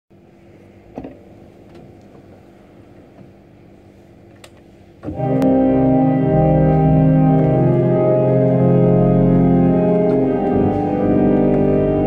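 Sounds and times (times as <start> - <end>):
steady low hum: 0.1 - 12.0
organ stop tabs clicking: 4.4 - 12.0.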